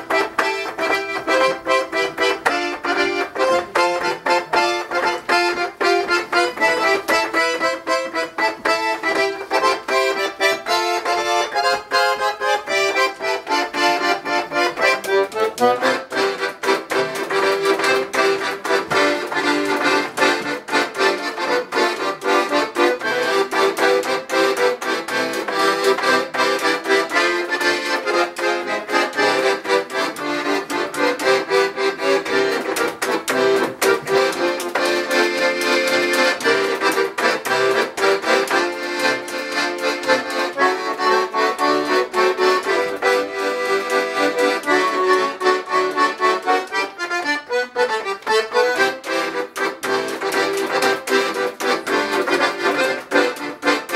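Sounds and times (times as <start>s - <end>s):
piano accordion playing lively tune: 0.0s - 53.9s.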